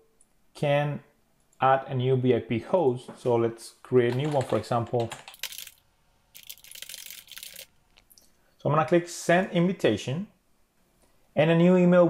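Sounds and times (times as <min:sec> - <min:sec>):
typing on keyboard: 0:04.1 - 0:05.8, 0:06.4 - 0:07.7.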